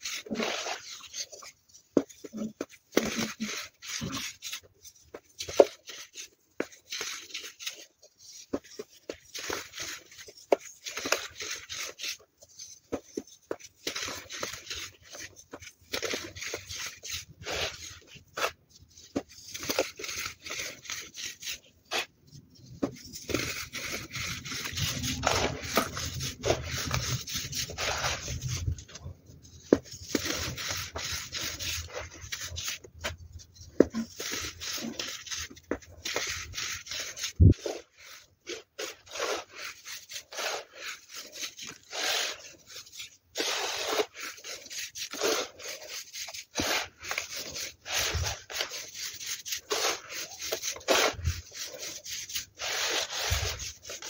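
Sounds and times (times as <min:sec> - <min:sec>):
hands crushing powder: 0:00.0 - 0:54.0.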